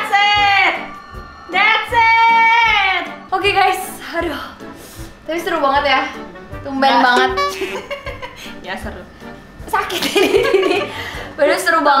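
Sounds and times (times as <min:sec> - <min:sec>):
faint regular beat: 0:07.2 - 0:08.4.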